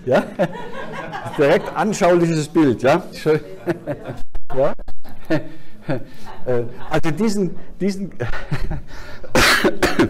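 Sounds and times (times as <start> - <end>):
man coughing: 9.3 - 10.0.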